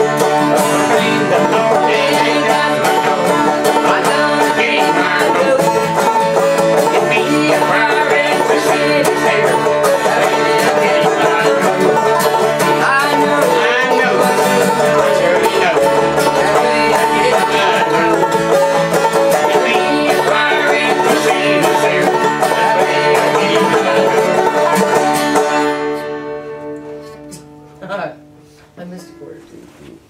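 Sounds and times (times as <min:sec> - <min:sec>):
banjo: 0:00.0 - 0:27.7
acoustic guitar: 0:00.0 - 0:30.0.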